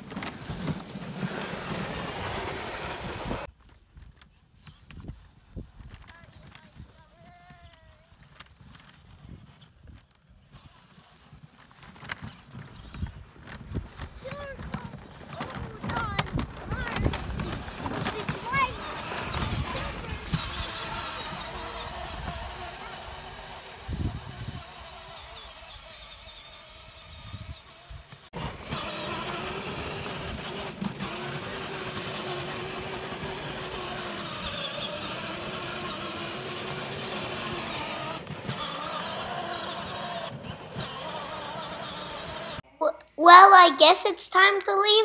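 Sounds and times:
electric toy car motor whining: 0.0 - 3.5, 10.5 - 42.6.

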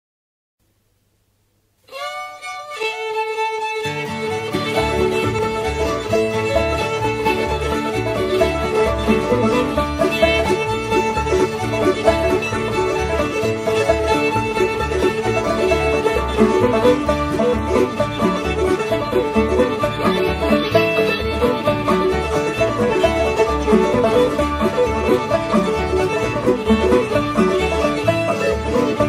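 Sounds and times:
string band playing fiddle tune: 1.9 - 29.0.

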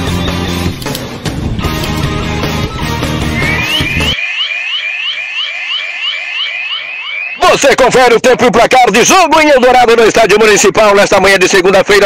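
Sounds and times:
intro music: 0.0 - 5.8
electronic alarm chirps: 3.2 - 8.5.

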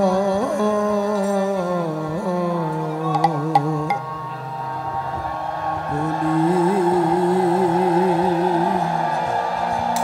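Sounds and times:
man singing a long wavering note: 5.9 - 9.1.

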